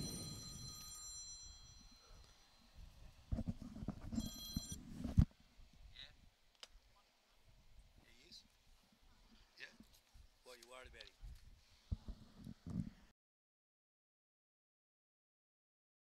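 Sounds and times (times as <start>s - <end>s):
high electronic ringing tone: 0.0s - 5.2s.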